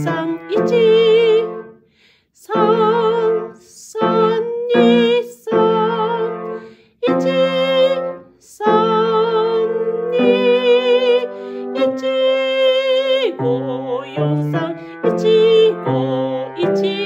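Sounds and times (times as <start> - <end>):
piano accompaniment: 0.0 - 1.8, 2.5 - 17.0
woman singing with vibrato: 0.0 - 1.8, 2.4 - 17.0.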